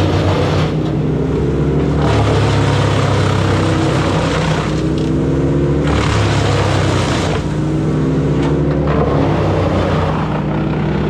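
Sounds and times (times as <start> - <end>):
diesel engines running: 0.0 - 11.0
wood chipper shredding brush: 0.0 - 11.0.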